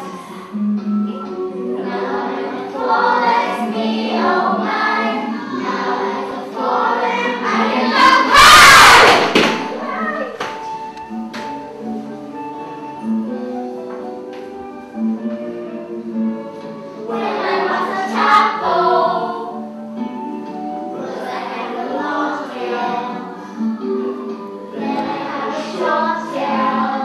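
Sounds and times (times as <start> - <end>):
children singing: 0.0 - 10.9, 15.2 - 27.0
instrumental backing track: 0.0 - 27.0.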